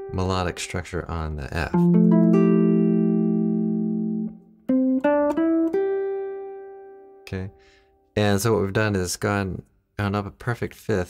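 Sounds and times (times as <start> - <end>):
guitar single notes: 1.7 - 7.8
guitar chord ringing: 1.7 - 8.0.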